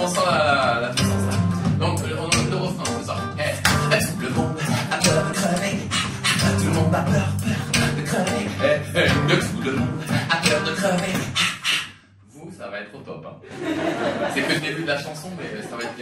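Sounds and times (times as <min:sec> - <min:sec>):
beatbox mouth percussion: 0:00.0 - 0:12.1.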